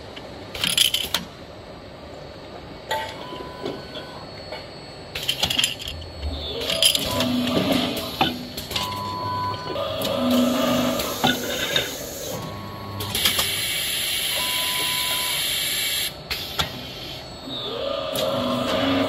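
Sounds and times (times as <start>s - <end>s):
short machine hums: 5.8s - 13.6s.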